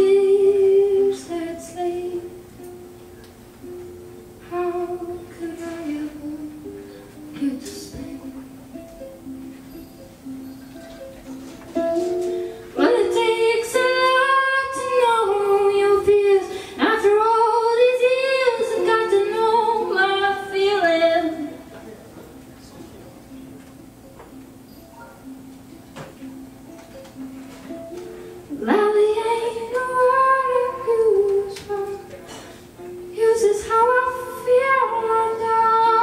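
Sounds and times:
woman singing: 0:00.0 - 0:02.8, 0:04.4 - 0:08.6, 0:12.8 - 0:21.6, 0:28.5 - 0:36.0
strummed ukulele: 0:00.0 - 0:36.0.

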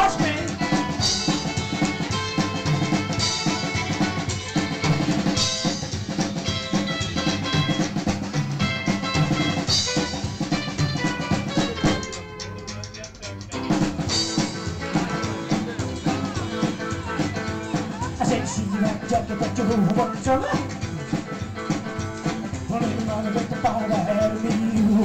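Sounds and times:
live band playing: 0:00.0 - 0:25.0.

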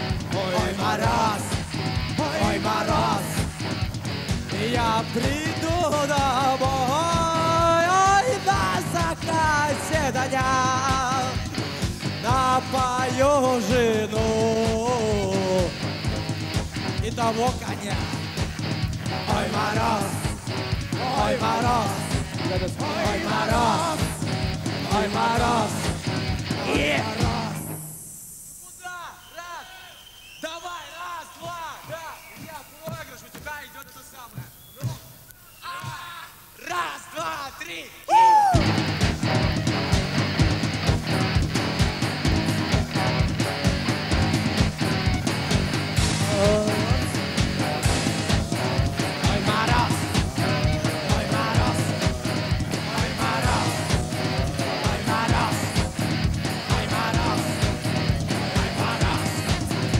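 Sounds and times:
drum kit beat: 0:00.0 - 0:27.8, 0:38.4 - 0:59.9
band music: 0:00.0 - 0:28.0, 0:38.1 - 0:59.9
electric guitars: 0:00.0 - 0:28.0, 0:38.1 - 0:59.9.

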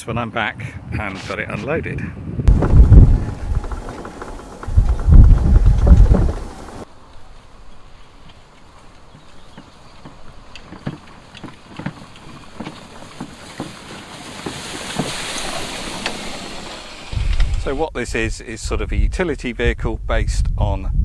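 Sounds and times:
wind buffeting microphone: 0:00.8 - 0:06.9, 0:09.0 - 0:21.0
low uneven rumble: 0:02.5 - 0:18.2.

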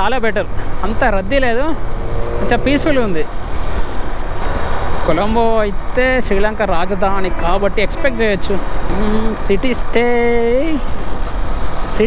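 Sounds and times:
road noise: 0:00.0 - 0:12.0
motorcycle engine: 0:01.0 - 0:05.6.

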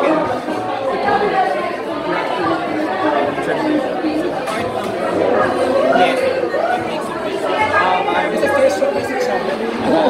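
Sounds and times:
chatter of many voices: 0:00.0 - 0:10.0.

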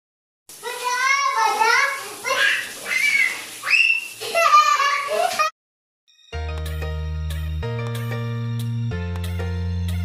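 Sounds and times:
toddler squealing and laughing: 0:02.4 - 0:05.5.

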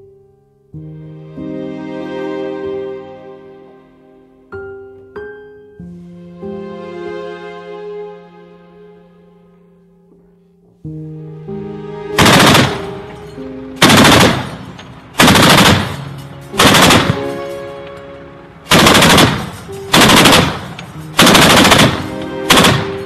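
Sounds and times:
soft background music: 0:00.0 - 0:23.0
heavy machine gun bursts: 0:12.2 - 0:13.0, 0:13.8 - 0:17.5, 0:18.7 - 0:23.0.

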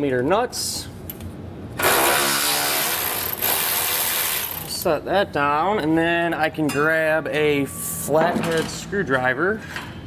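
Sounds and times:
cordless power ratchet running: 0:01.8 - 0:04.7.

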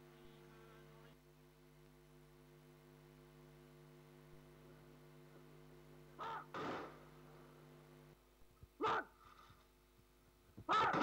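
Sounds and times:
electrical hum: 0:00.0 - 0:11.0
crows cawing: 0:06.2 - 0:06.7, 0:10.7 - 0:11.0.

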